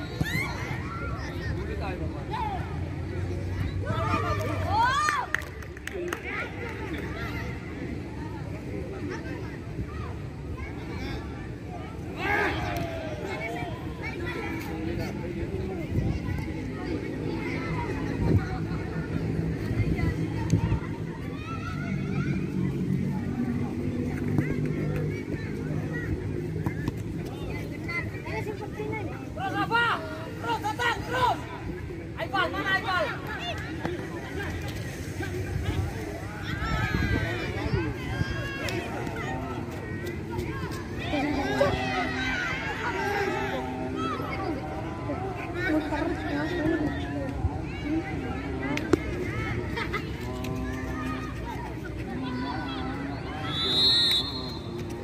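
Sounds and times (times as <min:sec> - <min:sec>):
other voices: 0:00.3 - 0:55.0.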